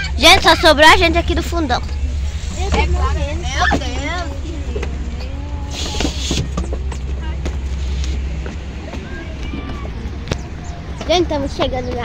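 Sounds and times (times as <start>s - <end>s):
people chatting: 0.0s - 12.0s
van engine idling: 0.0s - 12.0s.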